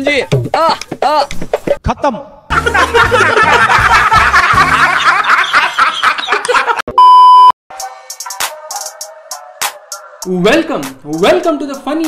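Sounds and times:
music with bass line: 2.5s - 5.1s
men laughing loudly: 2.5s - 6.9s
loud steady beep: 7.0s - 7.6s.

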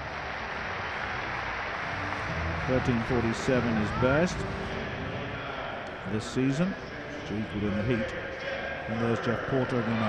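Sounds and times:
stadium crowd hubbub: 0.0s - 10.0s.

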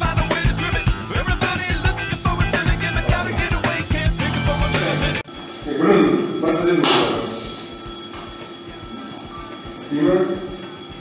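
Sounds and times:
rock music: 0.0s - 5.3s.

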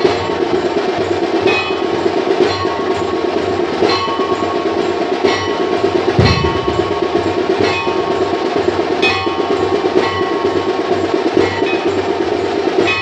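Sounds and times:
fast steady drumming: 0.0s - 13.0s
bell struck: 5.3s - 10.6s.

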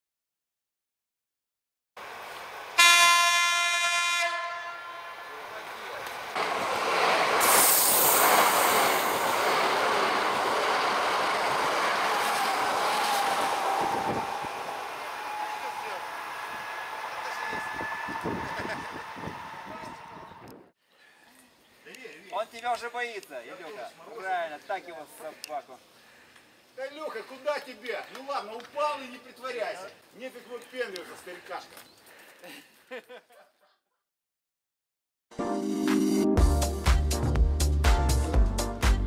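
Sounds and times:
train horn blast: 2.8s - 5.7s
train wheels rushing on rails: 5.4s - 20.4s.

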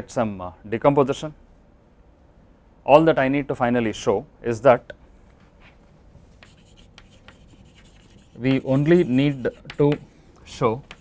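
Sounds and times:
chalk scratching on blackboard: 6.4s - 11.0s.

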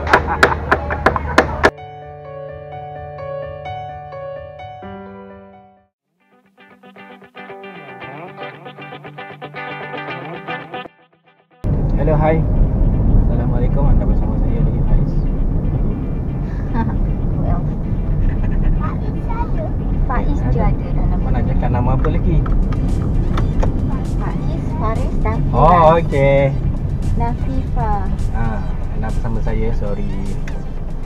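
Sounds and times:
car road and engine rumble: 11.6s - 31.0s
people talking: 13.3s - 15.2s, 16.8s - 22.5s, 23.9s - 26.6s, 27.2s - 30.7s.

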